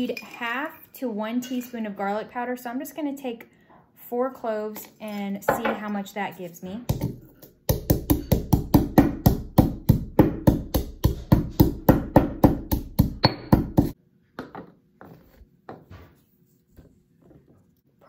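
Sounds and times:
stone pestle pounding in mortar: 0:06.9 - 0:14.0.

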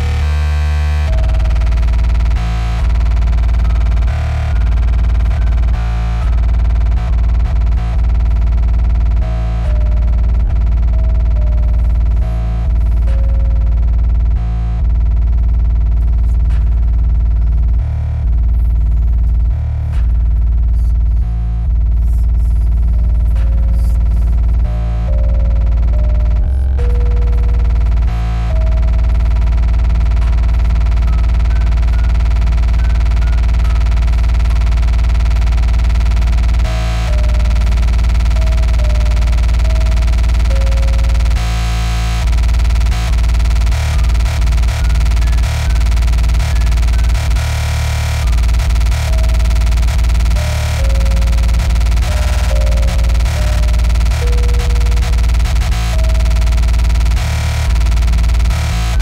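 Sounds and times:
distorted kick drum buzz: 0:00.0 - 0:59.0.

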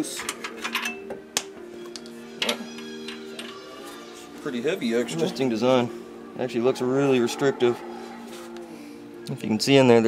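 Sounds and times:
background music chord: 0:00.0 - 0:10.0.

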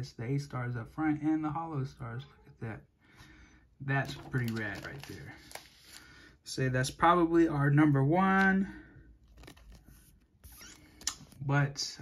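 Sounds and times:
plastic card sleeve rustling: 0:04.0 - 0:06.1, 0:09.2 - 0:11.4.

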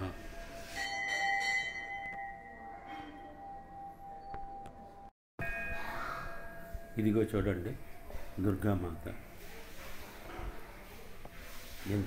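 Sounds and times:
temple bell ringing: 0:00.0 - 0:09.4.

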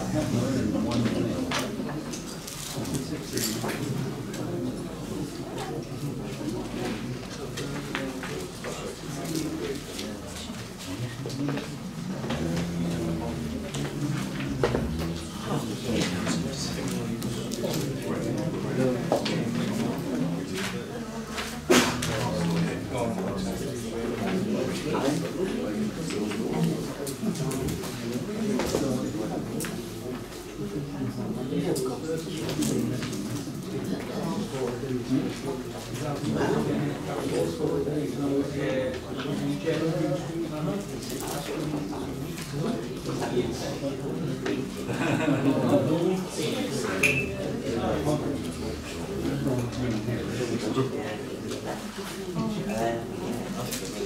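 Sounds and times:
low chatter of people talking: 0:00.0 - 0:54.0.

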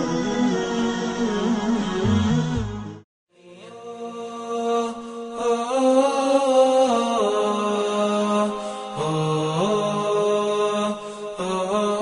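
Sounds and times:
solo vocal chant: 0:03.3 - 0:12.0.

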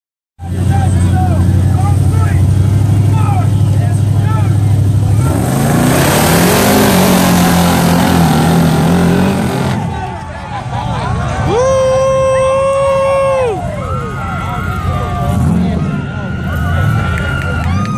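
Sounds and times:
engines revving: 0:00.4 - 0:17.9
tires spinning on dirt: 0:00.4 - 0:17.9.

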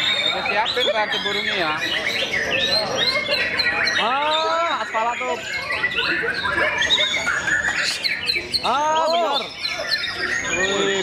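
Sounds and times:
bird singing whistled notes: 0:00.0 - 0:11.0.

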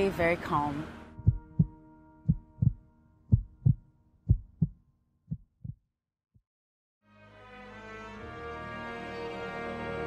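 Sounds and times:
heartbeat thumps: 0:01.2 - 0:05.8.

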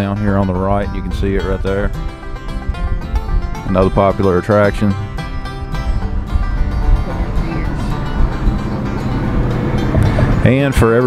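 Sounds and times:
background music: 0:00.0 - 0:11.0
car cabin road and engine noise: 0:01.7 - 0:11.0.

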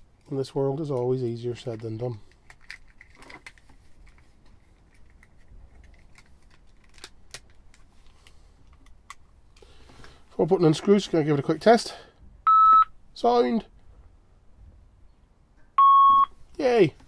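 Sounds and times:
plastic casing clicking together: 0:01.7 - 0:04.2, 0:04.9 - 0:07.9.

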